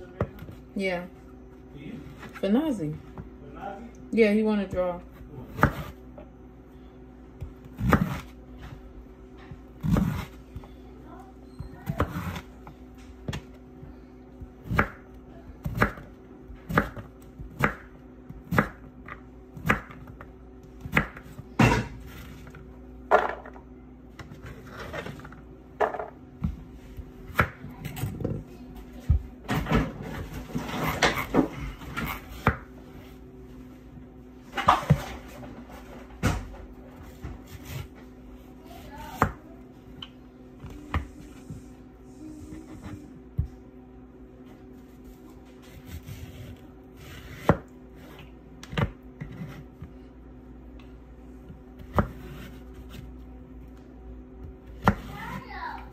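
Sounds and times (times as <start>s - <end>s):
steady low hum: 0.0s - 55.9s
knife chopping on plastic board: 14.6s - 21.9s, 45.8s - 49.9s, 51.8s - 53.0s.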